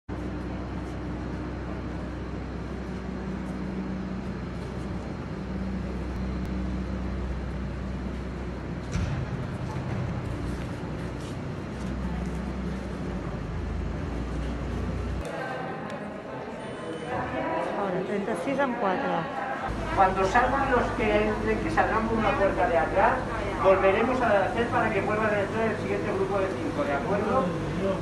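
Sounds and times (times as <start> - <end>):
traffic rumble: 0.1 - 15.2
constant hum: 0.1 - 16.1, 17.1 - 28.0.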